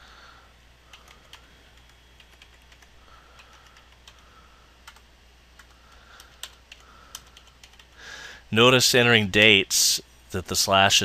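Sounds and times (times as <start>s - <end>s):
computer keyboard typing: 0.9s - 8.0s.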